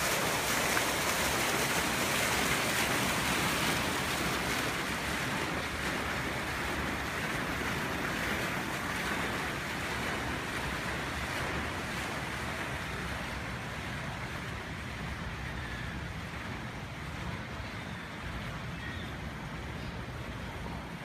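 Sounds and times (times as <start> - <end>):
fountain water splashing: 0.0 - 21.0.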